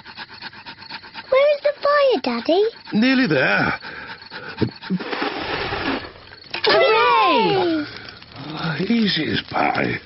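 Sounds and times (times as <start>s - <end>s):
breathy panting and puffing: 0.0s - 5.4s.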